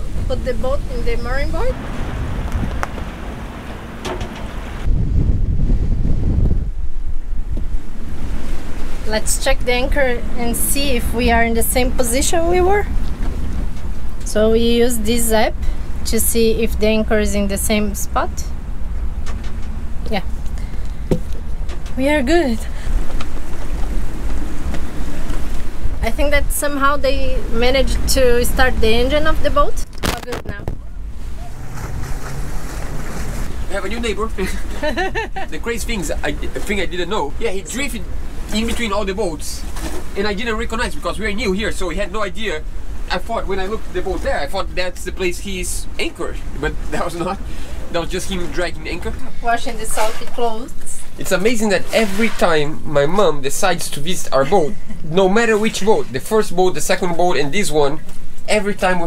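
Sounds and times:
wind buffeting microphone: 0.0s - 51.9s
choppy sea water: 0.0s - 59.0s.

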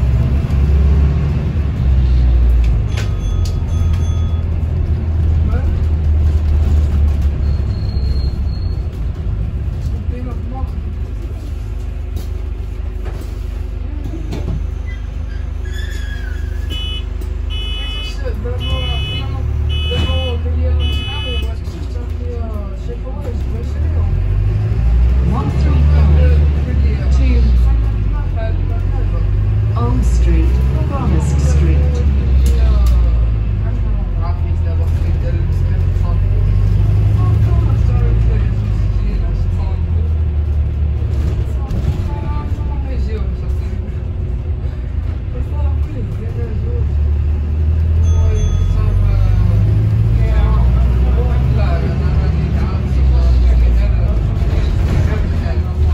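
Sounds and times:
bus low rumble: 0.0s - 55.9s.

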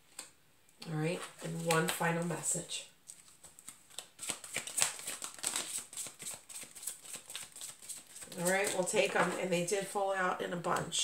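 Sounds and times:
cards being shuffled: 3.1s - 9.5s.

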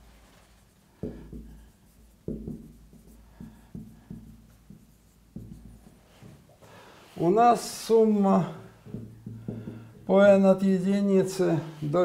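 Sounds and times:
marker writing on whiteboard: 0.5s - 10.5s.

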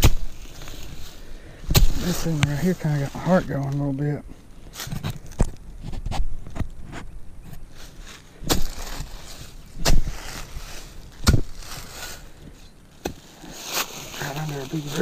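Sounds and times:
shovel chopping into ground: 0.0s - 1.0s, 1.6s - 2.7s, 8.4s - 12.2s, 13.0s - 15.0s
dry leaves rustling: 0.0s - 5.4s, 7.5s - 15.0s.

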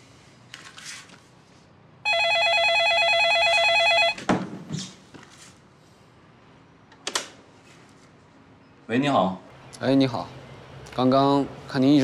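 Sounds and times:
telephone ringing with electronic trill: 2.0s - 4.2s.

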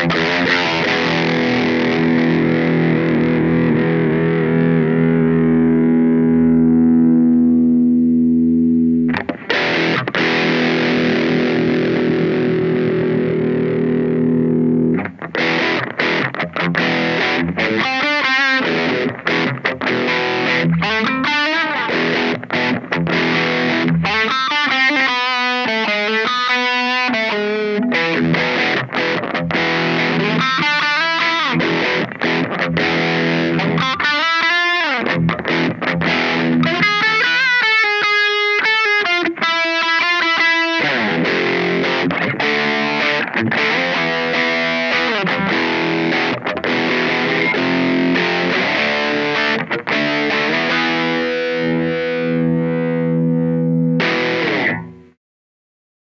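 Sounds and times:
distorted electric guitar: 0.0s - 55.2s.

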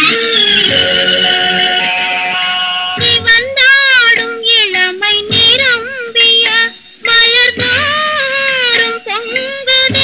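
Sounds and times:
music accompaniment: 0.0s - 10.0s
woman singing high melody: 2.9s - 10.0s.

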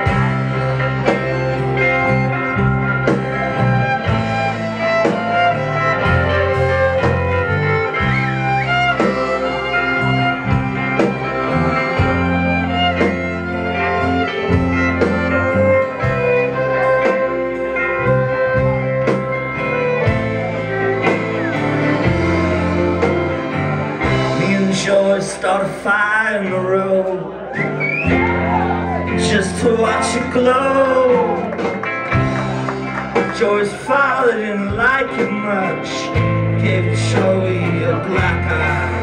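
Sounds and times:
steady drum beat: 0.0s - 24.8s
fiddle: 0.0s - 25.6s
guitar: 0.0s - 39.0s.

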